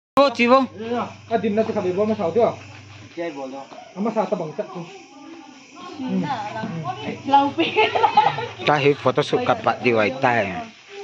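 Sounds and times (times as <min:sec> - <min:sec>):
low steady hum: 0:00.2 - 0:03.2, 0:05.6 - 0:10.6
people talking: 0:00.2 - 0:11.0.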